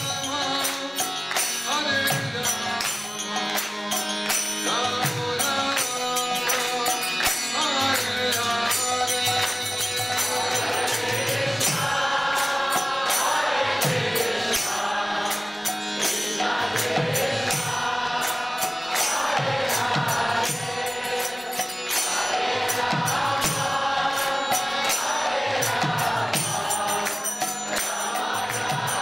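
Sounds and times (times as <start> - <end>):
small hand cymbals: 0.0 - 29.0
group chanting in chorus: 8.6 - 29.0.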